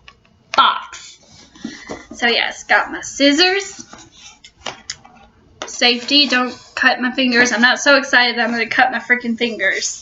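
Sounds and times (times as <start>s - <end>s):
woman speaking: 0.6s - 1.1s, 2.1s - 3.9s, 5.6s - 10.0s.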